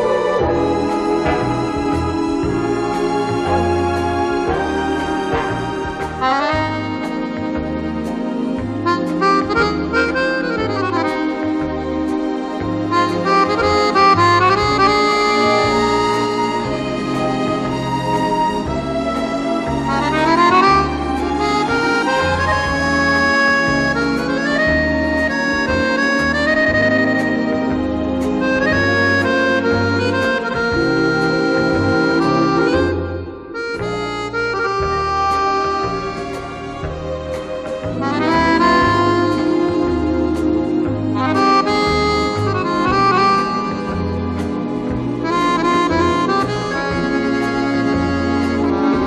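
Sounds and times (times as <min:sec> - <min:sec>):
accordion melody: 0:00.0 - 0:49.0
bass line: 0:00.0 - 0:49.0
light orchestral backing: 0:00.0 - 0:49.0.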